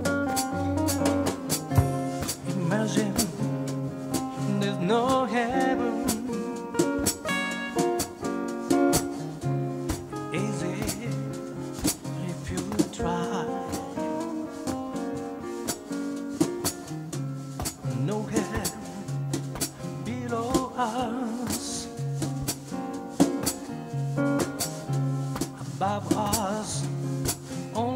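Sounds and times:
acoustic guitars playing: 0:00.0 - 0:27.9
drum kit beat: 0:00.0 - 0:27.9.

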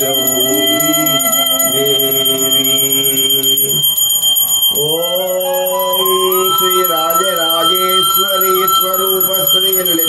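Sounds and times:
bell ringing steadily: 0:00.0 - 0:10.0
devotional music with held notes: 0:00.0 - 0:10.0.

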